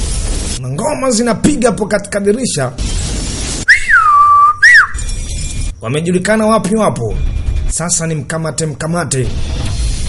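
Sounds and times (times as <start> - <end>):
whistle swooping up and down: 3.7 - 5.1.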